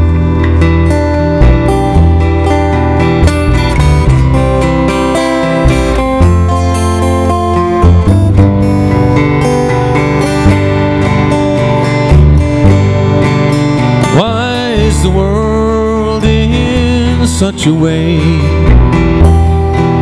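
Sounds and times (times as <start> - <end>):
acoustic guitar strumming: 0.0 - 20.0
plucked double bass: 0.0 - 20.0.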